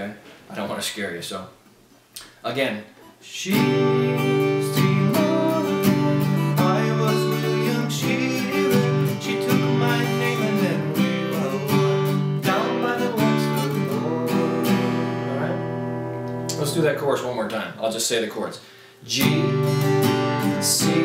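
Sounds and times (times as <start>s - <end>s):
acoustic guitar strumming: 3.4s - 17.1s, 19.1s - 21.0s.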